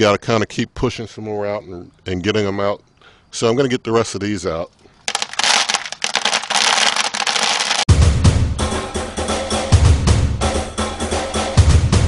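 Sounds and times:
wood pellets rattling into bucket: 0:05.1 - 0:07.9
music with drum beat: 0:07.9 - 0:12.0.

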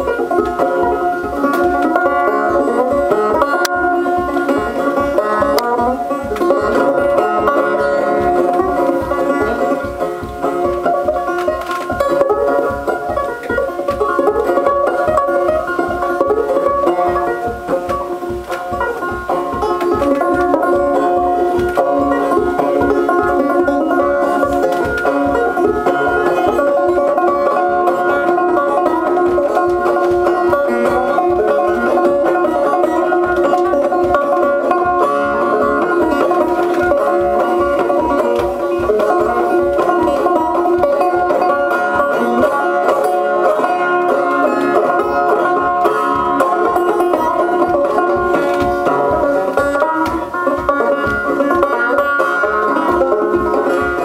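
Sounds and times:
banjo tune: 0:00.0 - 0:54.0.

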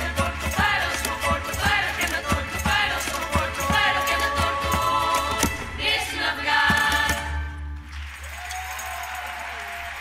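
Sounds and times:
women's chorus singing in unison: 0:00.0 - 0:07.5
double bass: 0:00.0 - 0:08.0.

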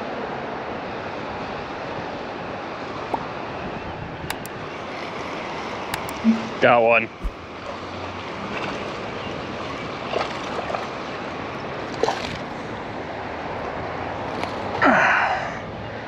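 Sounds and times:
flowing river water: 0:07.2 - 0:15.2.

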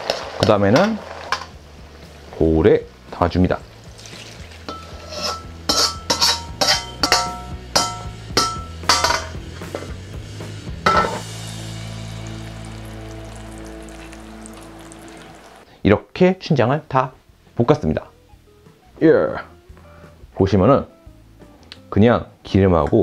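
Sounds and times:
metal ladle scraping a wok: 0:00.0 - 0:01.6, 0:04.0 - 0:10.0
steady musical tone: 0:11.2 - 0:15.7.

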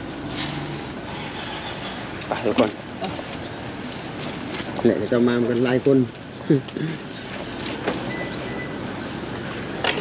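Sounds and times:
motor vehicle running: 0:00.0 - 0:10.0.

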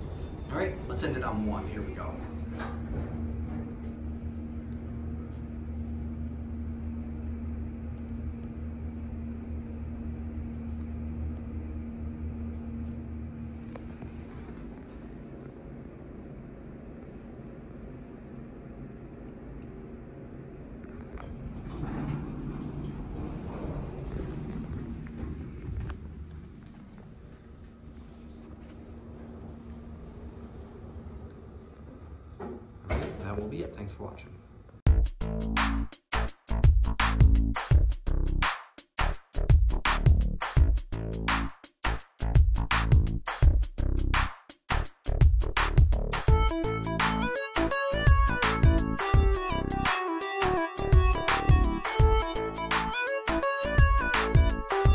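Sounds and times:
elevator doors rumbling and clattering: 0:00.0 - 0:05.6, 0:20.6 - 0:33.7
elevator low hum: 0:00.0 - 0:35.6, 0:39.4 - 0:41.3, 0:45.1 - 0:54.9.

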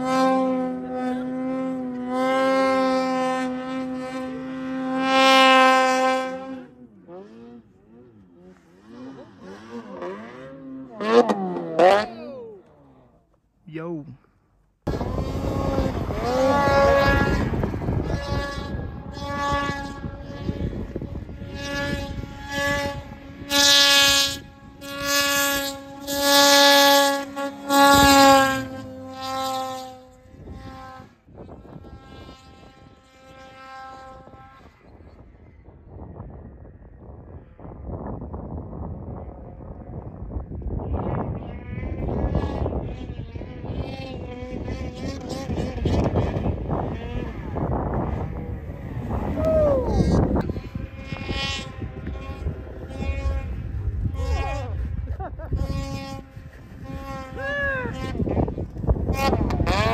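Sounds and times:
snowmobile engines revving: 0:00.0 - 0:35.5, 0:39.0 - 0:59.9.

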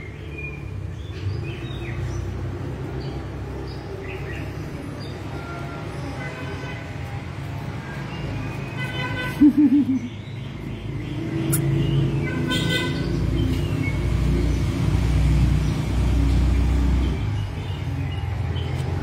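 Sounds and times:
low rumble of road traffic: 0:00.0 - 0:19.0.

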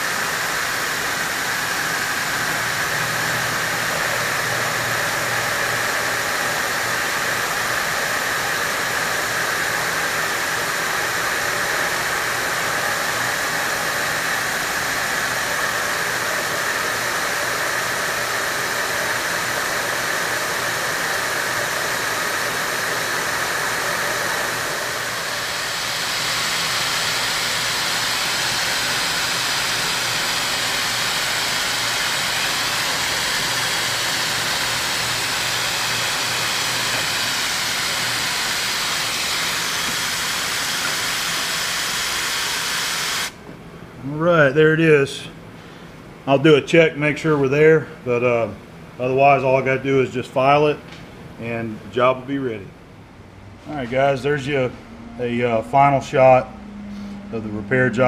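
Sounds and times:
milling machine cutting metal: 0:00.0 - 0:43.3
air mist sprayer hissing: 0:00.0 - 0:43.4
low motor hum: 0:53.1 - 0:58.0.

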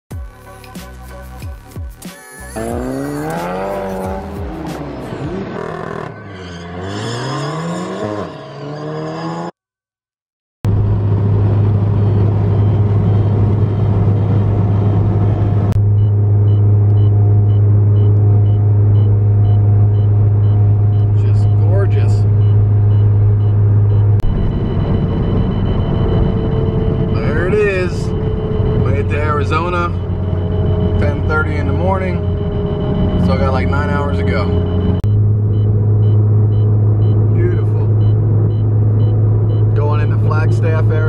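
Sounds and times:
car cruising drone from cabin: 0:02.4 - 0:06.3, 0:10.7 - 0:41.0
car engine revving: 0:02.5 - 0:09.6, 0:10.7 - 0:41.0.

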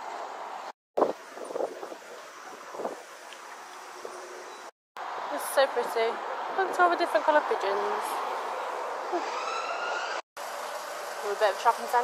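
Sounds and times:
wind buffeting microphone: 0:01.0 - 0:04.7
city street traffic: 0:03.6 - 0:12.0.

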